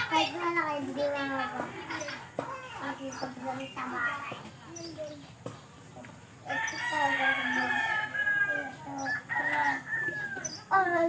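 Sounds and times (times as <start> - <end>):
rooster crowing: 6.5 - 10.5.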